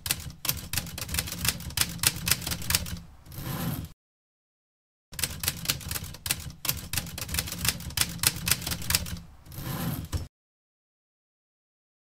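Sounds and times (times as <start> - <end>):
typewriter keys clacking: 0.0 - 3.0, 5.2 - 9.2.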